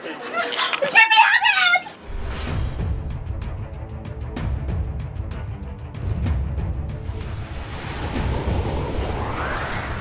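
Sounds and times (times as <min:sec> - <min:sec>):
deep bass rumble: 0:02.0 - 0:10.0
rushing whoosh: 0:06.0 - 0:10.0
upward sweeping tone: 0:07.7 - 0:10.0.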